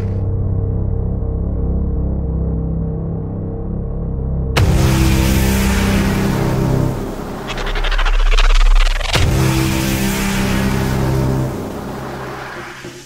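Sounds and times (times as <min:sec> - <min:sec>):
sharp hit: 0:04.6 - 0:13.0.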